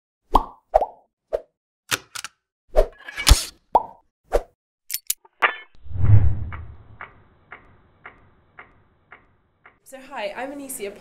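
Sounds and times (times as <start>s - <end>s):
low thump: 6.0s - 7.0s.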